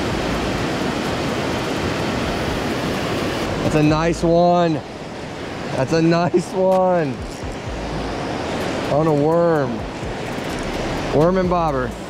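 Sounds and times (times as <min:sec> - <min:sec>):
river current rushing: 0:00.0 - 0:12.0
wind rumble on microphone: 0:06.6 - 0:12.0.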